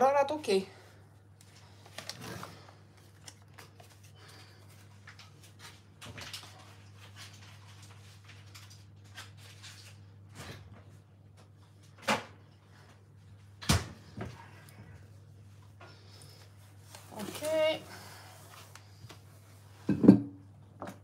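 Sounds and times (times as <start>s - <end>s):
rustling: 16.2s - 19.5s.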